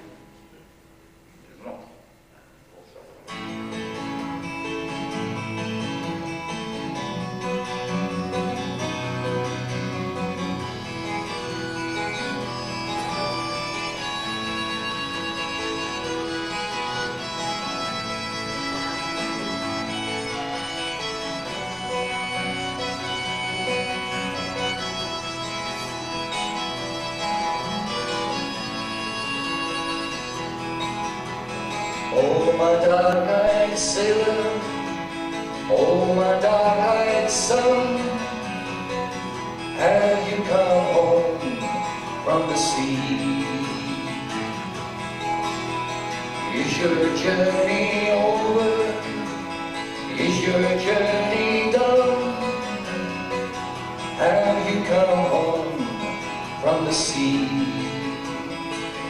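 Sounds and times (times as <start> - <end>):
harmonica: 3.3 - 59.0
twelve-string acoustic guitar strumming: 3.3 - 59.0
man singing: 32.0 - 39.0, 39.7 - 44.6, 46.4 - 58.6.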